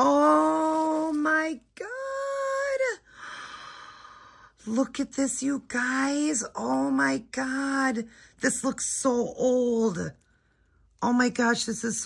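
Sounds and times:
breathy exhale: 3.1s - 4.6s.

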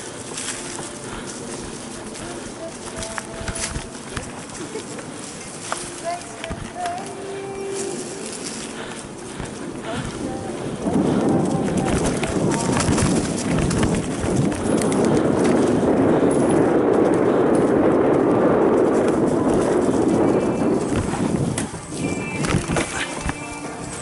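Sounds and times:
bike tyres rolling over dry leaves: 0.0s - 24.0s
chain and frame rattling: 0.0s - 24.0s.

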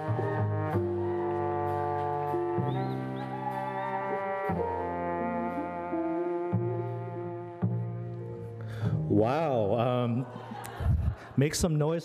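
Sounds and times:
horn line: 0.0s - 8.5s.

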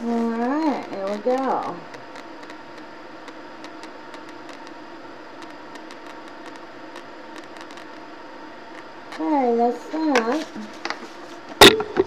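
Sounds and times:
air purifier fan humming: 0.0s - 12.0s.

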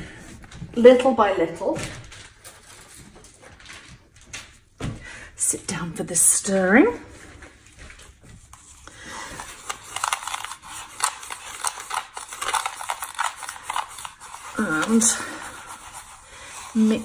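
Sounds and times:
stick stirring gritty sand in glue: 13.2s - 17.0s.

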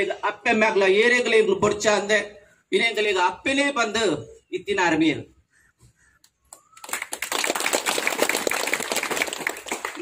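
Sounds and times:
crowd applauding: 6.5s - 10.0s.

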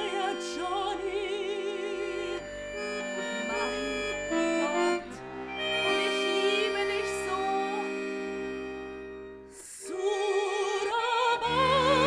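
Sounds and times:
woman singing with vibrato: 0.0s - 2.4s, 3.2s - 5.0s, 5.7s - 8.0s, 9.6s - 12.0s
button accordion playing: 0.0s - 12.0s.

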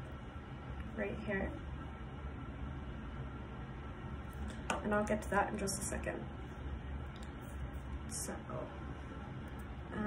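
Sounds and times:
low background hum: 0.0s - 10.0s.

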